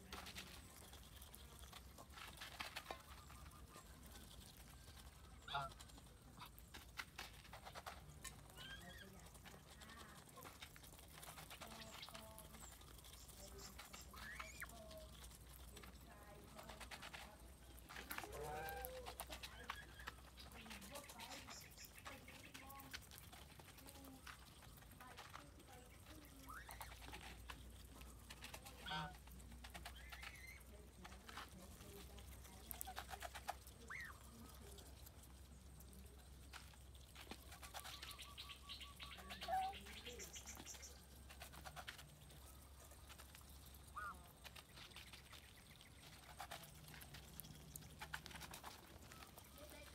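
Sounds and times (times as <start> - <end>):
bills pecking feed from bowls: 0.0 - 49.9
geese calling softly: 2.8 - 6.8, 26.4 - 30.7, 32.7 - 35.0, 41.8 - 49.8
goose calling: 5.4 - 6.5.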